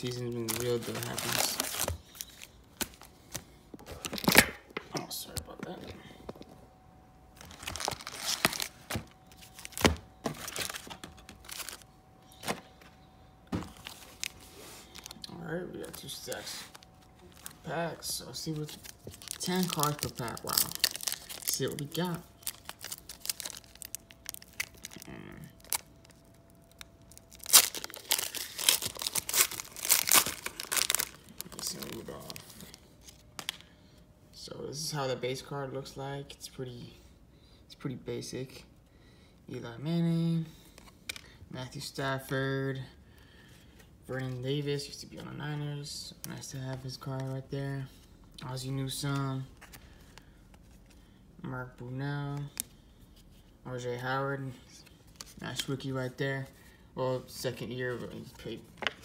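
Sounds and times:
foil card packs crinkling: 0:00.0 - 0:04.5, 0:07.3 - 0:13.0, 0:13.6 - 0:33.7.

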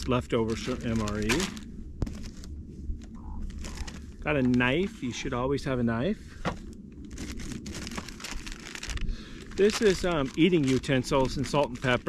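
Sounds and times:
plastic bag crinkling: 0:00.0 - 0:05.0, 0:06.5 - 0:12.0.

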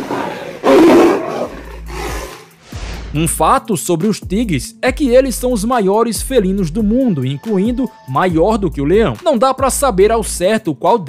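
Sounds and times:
tiger roaring angrily: 0:00.0 - 0:02.6.

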